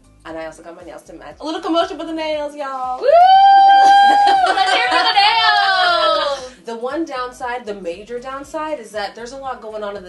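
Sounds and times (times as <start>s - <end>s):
woman shouting woo: 3.0s - 6.5s.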